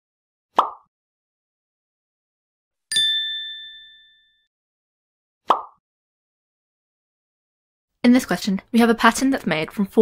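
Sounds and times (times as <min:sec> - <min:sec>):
bright bell-like ding: 0:02.9 - 0:04.5.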